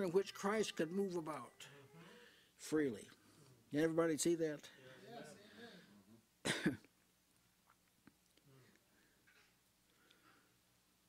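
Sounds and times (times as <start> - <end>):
person coughing: 6.4 - 6.9.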